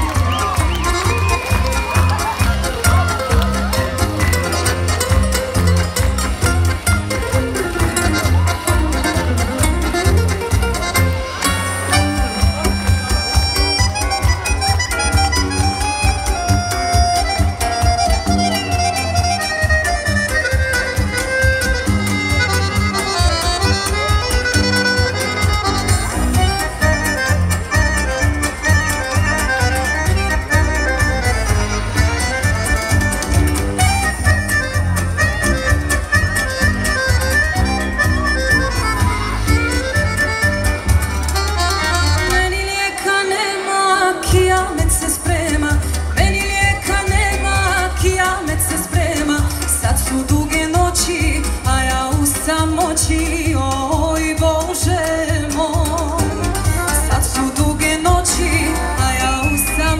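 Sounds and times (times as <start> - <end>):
bass and drum beat: 0.0 - 42.8, 44.3 - 59.9
accordion melody: 0.0 - 59.9.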